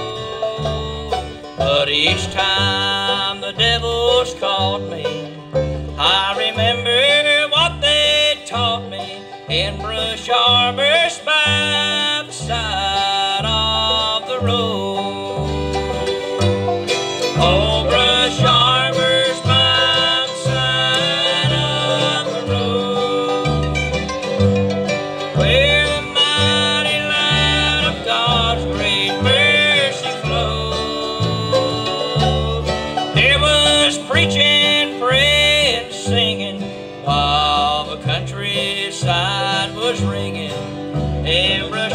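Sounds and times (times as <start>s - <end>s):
acoustic guitar: 0.0s - 41.9s
banjo: 0.0s - 41.9s
fiddle: 0.0s - 41.9s
mandolin: 0.0s - 41.9s
upright bass: 0.0s - 41.9s.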